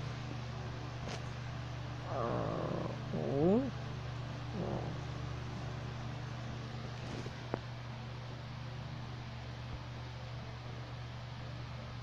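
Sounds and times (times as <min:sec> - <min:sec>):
steady low hum: 0:00.0 - 0:12.0
person making animal-like noises: 0:02.1 - 0:03.8, 0:04.5 - 0:05.0.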